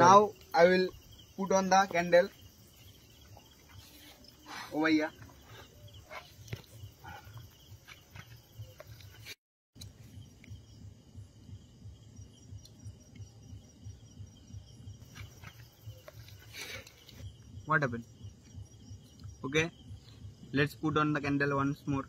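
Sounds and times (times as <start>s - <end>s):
insect chirping: 0.0s - 22.0s.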